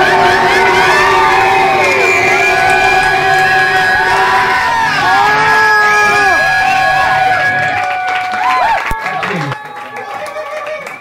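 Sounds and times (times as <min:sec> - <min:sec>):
steady held tone: 0:00.0 - 0:07.9
audience cheering and whooping: 0:00.0 - 0:11.0.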